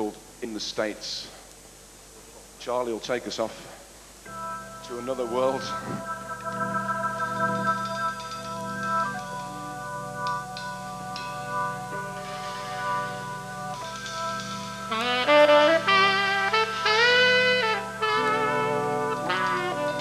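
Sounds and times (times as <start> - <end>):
band playing held chords: 4.3 - 20.0
saxophone melody: 4.3 - 20.0.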